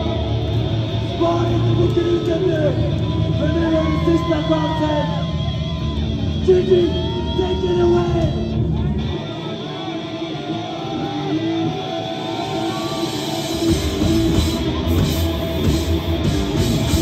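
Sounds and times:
electric guitars playing: 0.0s - 17.0s
heavy metal band playing live: 0.0s - 17.0s.

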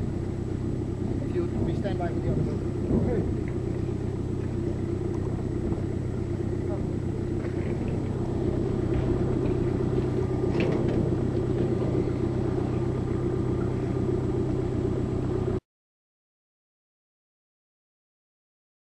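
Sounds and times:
boat engine running: 0.0s - 15.6s.

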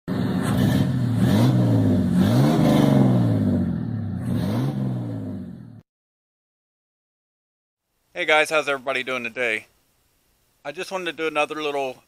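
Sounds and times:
car engine revving: 0.1s - 5.8s.

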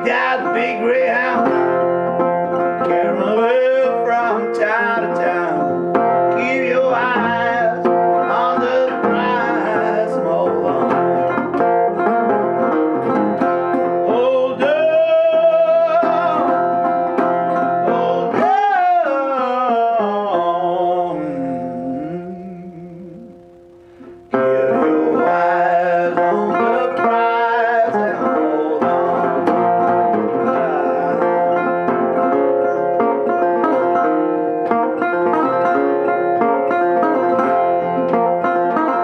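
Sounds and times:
resonator guitar playing: 0.0s - 39.0s.

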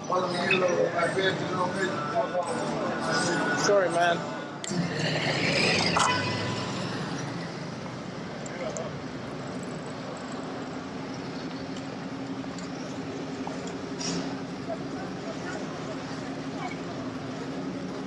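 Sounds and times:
passers-by talking: 0.0s - 18.0s
traffic noise: 0.0s - 18.0s.

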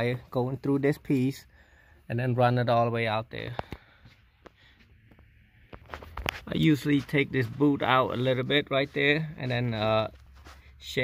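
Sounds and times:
light clicks and rustles: 3.4s - 7.5s.

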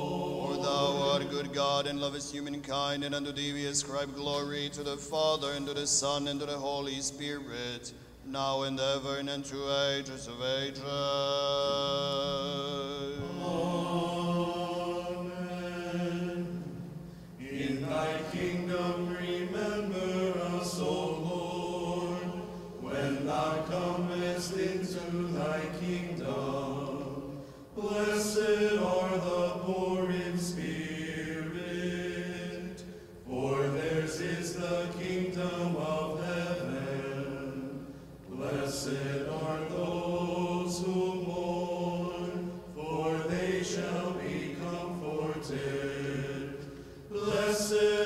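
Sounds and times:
choir chanting: 0.0s - 4.5s, 8.8s - 48.0s.

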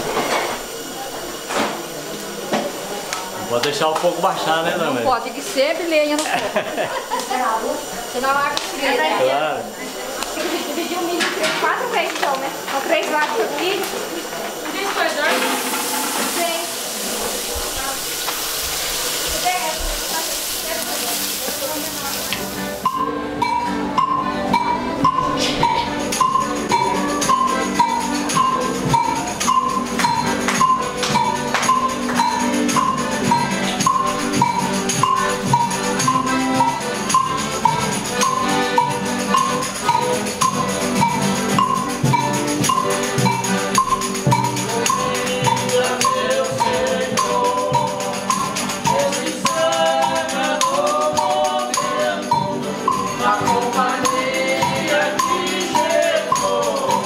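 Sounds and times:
steady hiss: 0.0s - 23.1s
strummed guitar: 5.9s - 57.0s.

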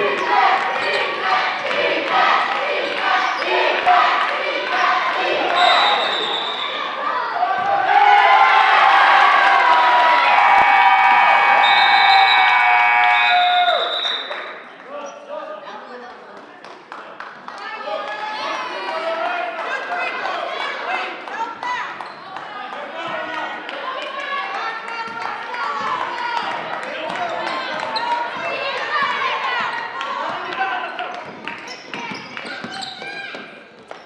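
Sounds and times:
crowd voices: 0.0s - 16.3s
referee's whistle: 5.5s - 6.9s, 11.6s - 14.5s.

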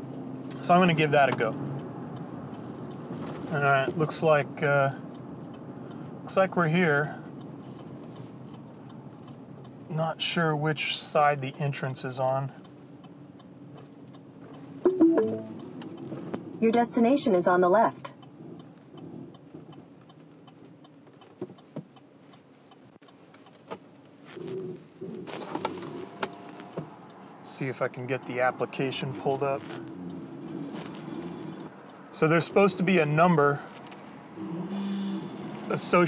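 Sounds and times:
truck engine low hum: 0.0s - 21.7s, 23.9s - 36.0s
road and cabin noise: 0.0s - 36.0s
turn signal ticking: 0.0s - 36.0s.

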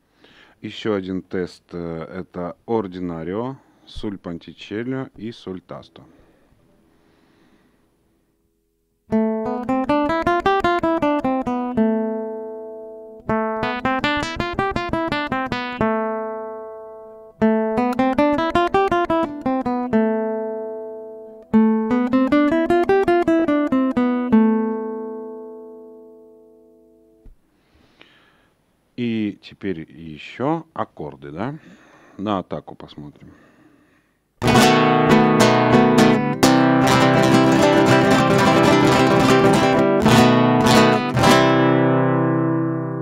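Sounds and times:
classical guitar scale: 9.1s - 27.4s, 34.4s - 43.0s.

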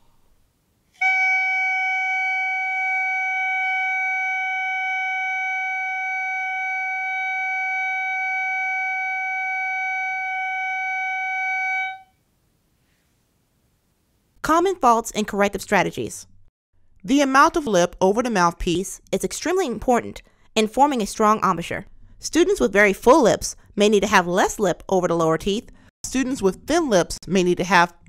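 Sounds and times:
clarinet mouthpiece steady tone: 0.0s - 12.2s.

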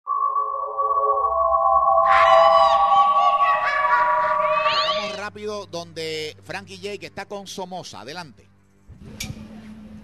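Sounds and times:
bright pitch-bending tones: 0.1s - 5.2s
sustained held tones: 0.1s - 5.2s.

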